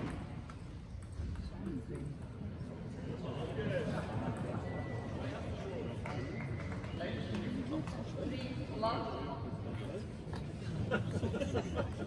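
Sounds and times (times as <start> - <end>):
low voices in a hall: 0.0 - 12.0.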